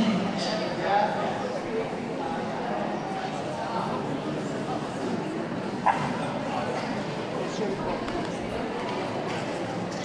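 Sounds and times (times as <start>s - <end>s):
dog barking: 5.8s - 6.1s.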